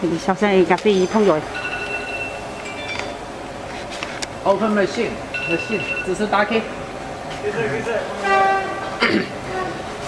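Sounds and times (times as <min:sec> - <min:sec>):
machine warning buzzer: 0:01.5 - 0:03.0, 0:05.3 - 0:06.3.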